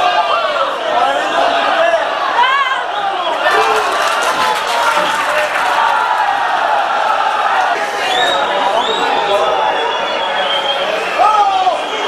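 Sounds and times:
stadium crowd shouting: 0.0 - 12.0.

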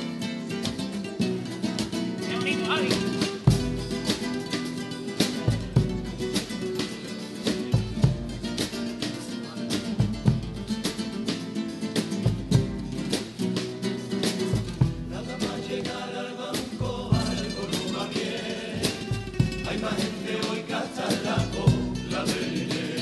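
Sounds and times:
acoustic guitars strumming: 0.0 - 23.0
drum strikes: 1.8 - 23.0.

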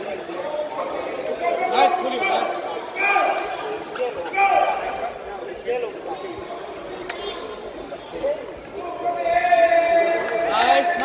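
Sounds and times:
many voices talking and calling out: 0.0 - 11.0.

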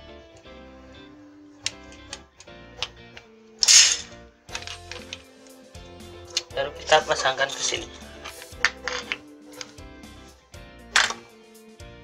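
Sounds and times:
background guitar music: 0.0 - 12.0
short hissing burst: 3.6 - 4.1
clicks and knocks of handling: 8.2 - 9.8.

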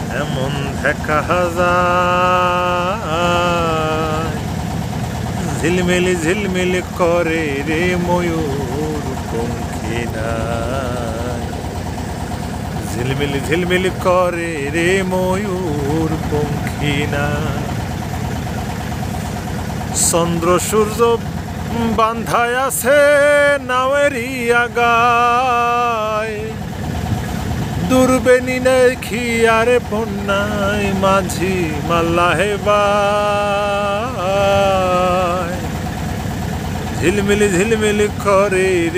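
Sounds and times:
boat engine running: 0.0 - 38.9.

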